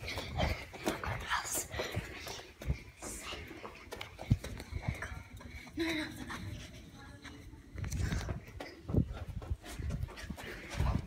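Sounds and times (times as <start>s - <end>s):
hushed whispering: 0.0s - 4.0s
rustling and thumps of movement: 0.0s - 6.8s, 7.7s - 11.0s.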